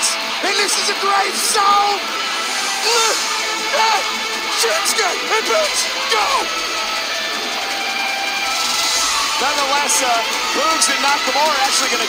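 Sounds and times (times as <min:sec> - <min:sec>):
rock music with electric guitar: 0:00.0 - 0:12.0.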